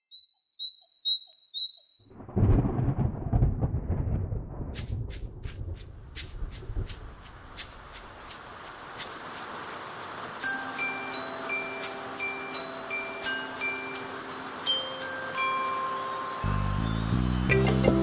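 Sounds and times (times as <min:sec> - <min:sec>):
thunder rumbling: 0:02.1 - 0:08.6
rain hissing with drop ticks: 0:04.7 - 0:18.0.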